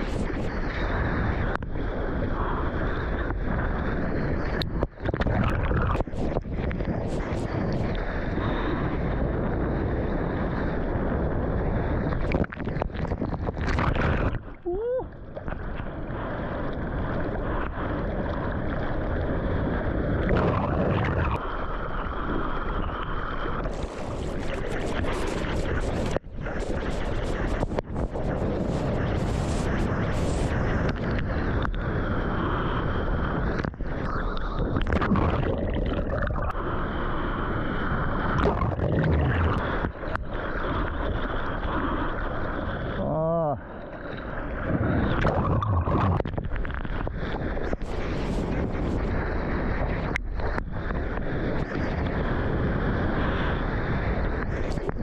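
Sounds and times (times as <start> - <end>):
wind buffeting microphone: 0.0 - 55.0
water sloshing and splashing: 12.1 - 15.9.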